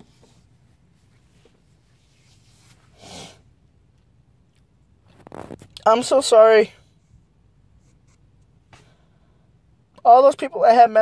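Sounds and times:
soft rustle: 0.0 - 3.0, 4.5 - 6.0.

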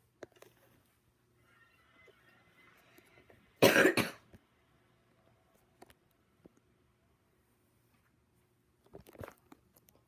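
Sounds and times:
loud cough: 3.6 - 4.3.

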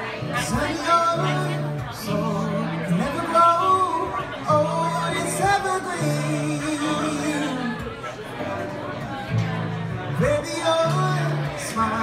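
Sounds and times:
acoustic guitar song: 0.0 - 12.0
audience chatter: 0.0 - 12.0.

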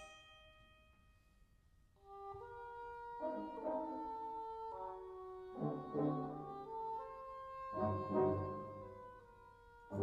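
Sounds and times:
wind band playing: 2.1 - 10.0.

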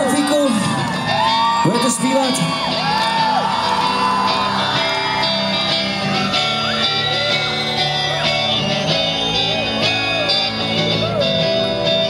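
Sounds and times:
audience shouts and whoops: 0.0 - 12.0
electric guitar: 0.0 - 12.0
live rock band playing: 0.0 - 12.0.

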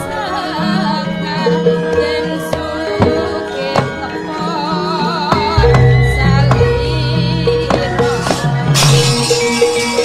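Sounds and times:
metallophone notes: 5.5 - 10.0
low sustained tone: 5.6 - 10.0.

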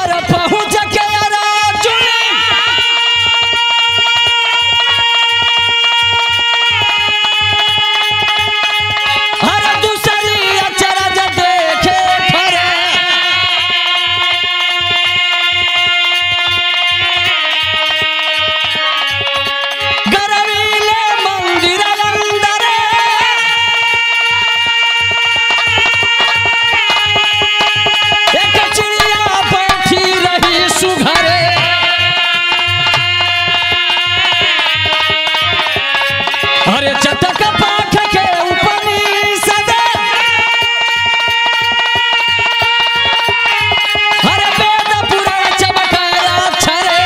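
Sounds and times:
dholak beat: 0.0 - 47.0
hand drum rhythm: 0.0 - 47.0
harmonium notes: 0.0 - 47.0.

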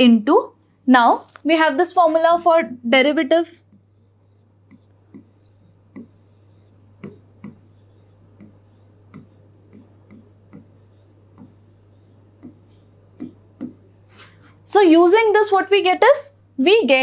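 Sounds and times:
steady low hum: 1.6 - 17.0
stylus tapping on touchscreen: 3.6 - 13.9.

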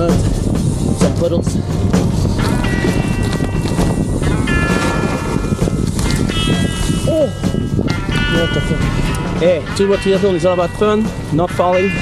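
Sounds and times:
background music chords: 0.0 - 12.0
wind rumble on microphone: 0.0 - 12.0.

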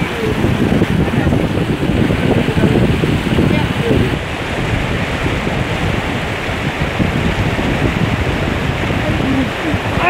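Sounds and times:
stream running over rocks: 0.0 - 10.0
wind on microphone: 0.0 - 10.0.

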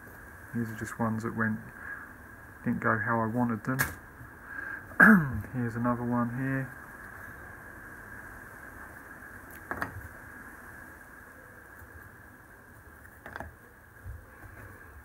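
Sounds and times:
faint steady hiss: 0.0 - 15.0
plywood pieces clicking: 9.5 - 10.0, 13.0 - 13.6.

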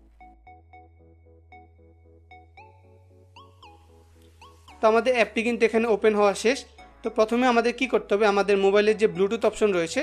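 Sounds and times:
electronic background music: 0.0 - 10.0.

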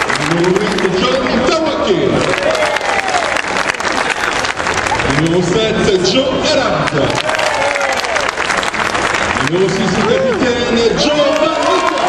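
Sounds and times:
stadium crowd applauding: 0.0 - 12.0.

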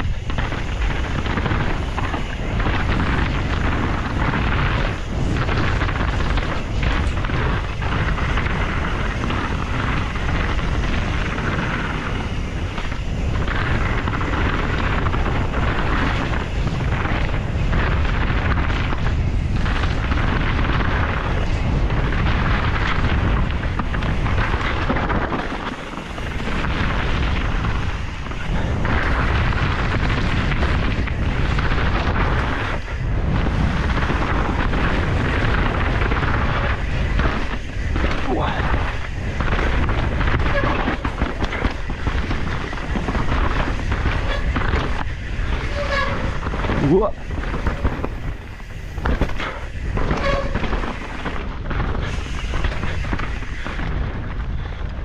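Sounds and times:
bike rattling: 0.0 - 55.0
tyres rolling over dirt and rock: 0.0 - 55.0
wind buffeting microphone: 0.0 - 55.0.

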